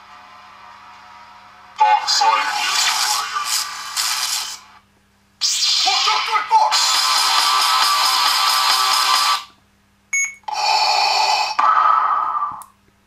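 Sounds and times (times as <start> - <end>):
music from small speaker: 5.4 - 9.5.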